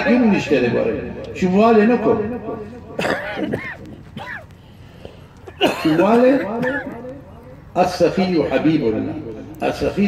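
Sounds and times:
man clearing his throat: 3.0s - 4.5s, 5.4s - 7.0s.

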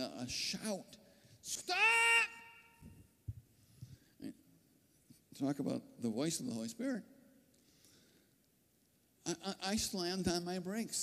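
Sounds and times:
man shouting: 1.5s - 2.8s.

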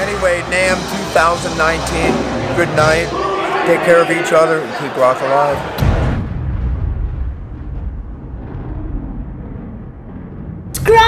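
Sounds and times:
deep rumbling sound effect: 5.8s - 11.0s.

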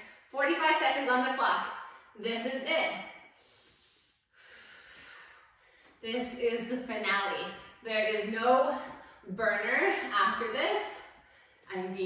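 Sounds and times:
woman breathing: 3.1s - 6.0s, 11.1s - 11.7s.

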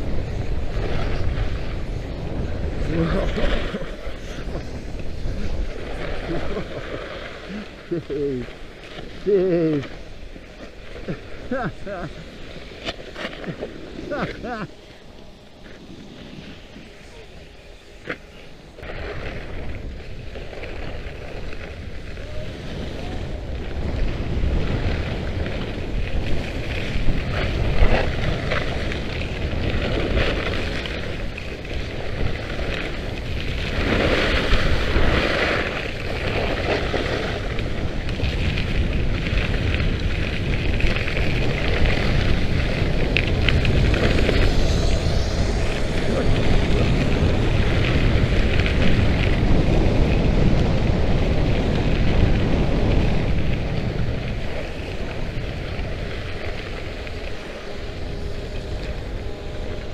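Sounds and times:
skis scraping over icy snow: 0.0s - 59.9s
wind buffeting microphone: 0.0s - 59.9s.

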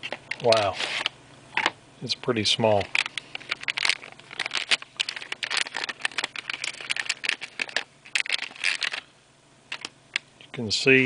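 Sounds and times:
plastic bag crinkling: 2.8s - 9.1s.

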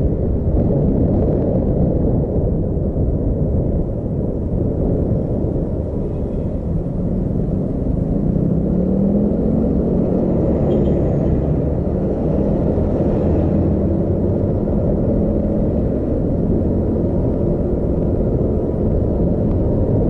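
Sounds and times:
road noise: 0.0s - 20.0s
vehicle engine rumble: 0.0s - 20.0s.

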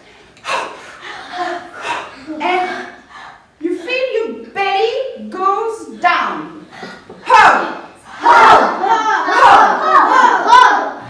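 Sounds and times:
children shouting together: 7.3s - 11.0s.

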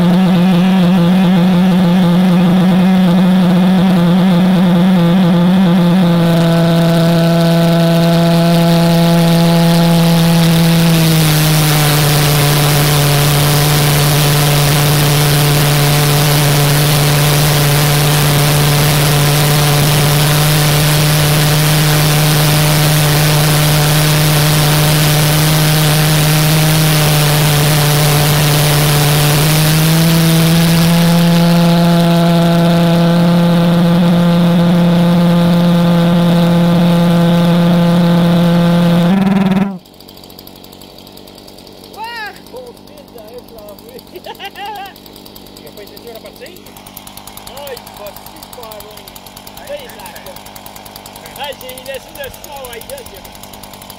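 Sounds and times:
pulsejet engine buzzing drone: 0.0s - 43.2s.

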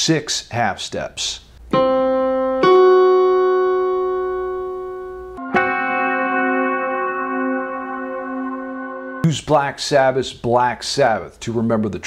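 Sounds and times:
keyboard notes ringing: 1.7s - 10.1s.

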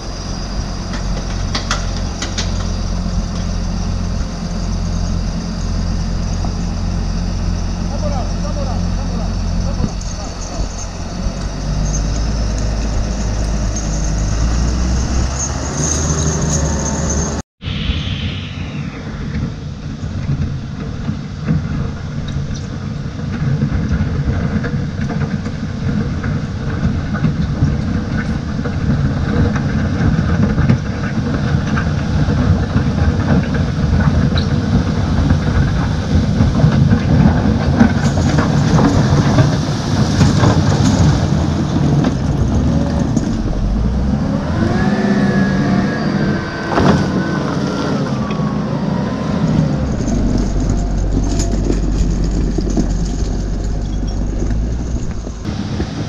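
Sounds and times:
diesel engine working under load: 0.0s - 18.9s, 22.8s - 56.0s
whining tone rising and falling: 0.0s - 21.2s, 35.4s - 55.6s
rocks grinding and crunching: 49.8s - 55.8s.

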